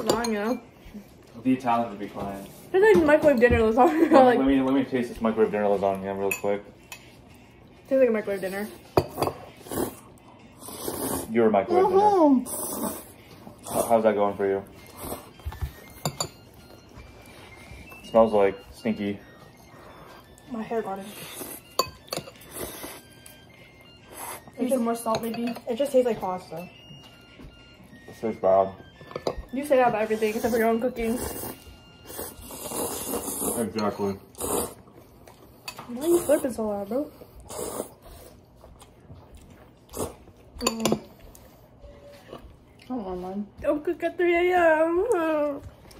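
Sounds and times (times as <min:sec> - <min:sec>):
utensils clinking on ceramic bowls: 0:00.0 - 0:00.7, 0:04.4 - 0:07.3, 0:08.8 - 0:09.6, 0:14.8 - 0:17.2, 0:21.6 - 0:23.4, 0:24.6 - 0:27.3, 0:28.9 - 0:31.1, 0:33.6 - 0:34.2, 0:40.5 - 0:41.3.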